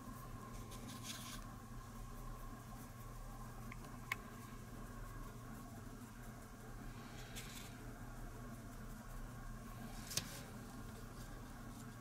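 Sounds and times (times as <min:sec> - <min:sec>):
low room hum: 0:00.0 - 0:12.0
paintbrush scratching: 0:00.0 - 0:12.0.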